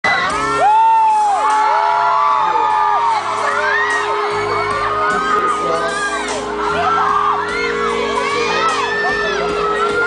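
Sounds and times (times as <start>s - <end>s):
fans screaming: 0.0s - 10.0s
live pop music: 0.0s - 10.0s.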